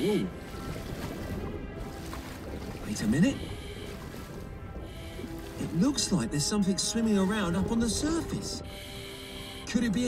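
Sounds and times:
low underwater rumble: 0.0s - 8.6s
faint steady tones: 0.0s - 10.0s.

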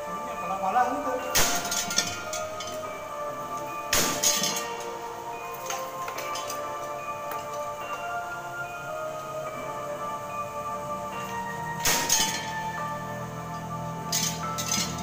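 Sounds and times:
gamelan music: 0.0s - 15.0s
metal plates crashing: 1.3s - 2.9s, 3.9s - 5.0s, 11.8s - 12.8s, 14.1s - 15.0s
metal clinks: 1.3s - 8.2s, 11.2s - 15.0s.

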